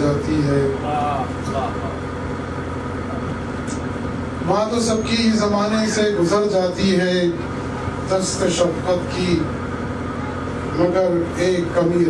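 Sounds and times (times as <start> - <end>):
boat engine rumbling: 0.0 - 12.0.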